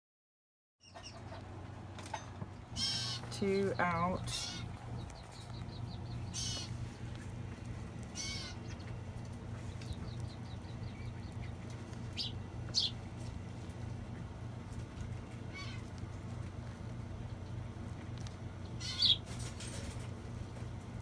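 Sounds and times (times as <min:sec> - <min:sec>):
bird chirping: 0:00.8 - 0:01.4, 0:02.5 - 0:07.3, 0:08.0 - 0:13.1, 0:18.6 - 0:19.3
steady low hum: 0:00.8 - 0:21.0.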